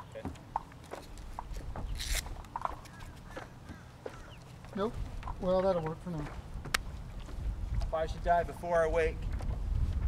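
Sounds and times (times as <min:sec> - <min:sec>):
leash clicks and handling: 0:00.0 - 0:08.0
wind rumble on microphone: 0:06.3 - 0:10.0.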